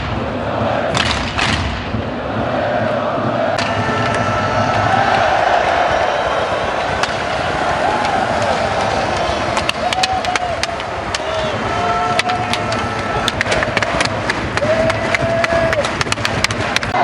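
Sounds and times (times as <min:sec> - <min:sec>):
crowd cheering and chanting: 0:00.0 - 0:17.0.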